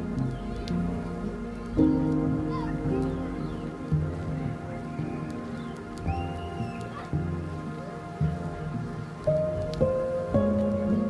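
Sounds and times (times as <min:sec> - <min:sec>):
music with sustained notes: 0:00.0 - 0:11.0.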